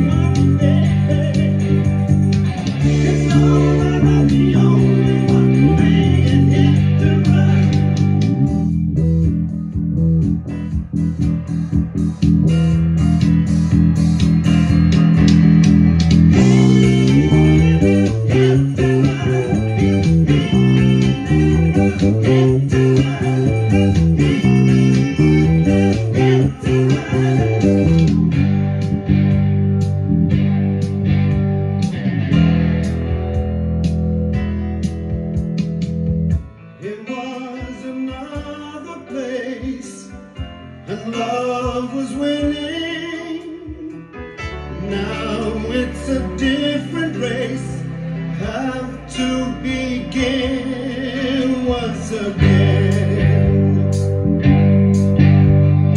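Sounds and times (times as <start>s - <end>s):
electric bass playing: 0.0s - 36.7s, 44.4s - 55.9s
rock band recording: 0.0s - 55.9s.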